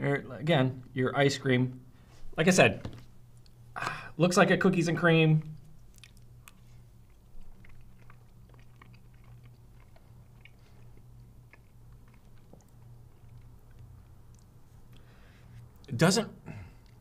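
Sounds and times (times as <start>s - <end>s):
steady low hum: 0.0s - 17.0s
person chewing: 5.5s - 15.9s, 16.7s - 17.0s.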